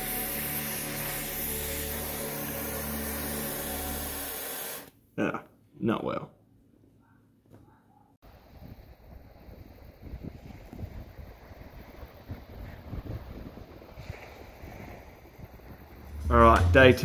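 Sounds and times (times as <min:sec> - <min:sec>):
wind buffeting microphone: 0:08.4 - 0:17.0.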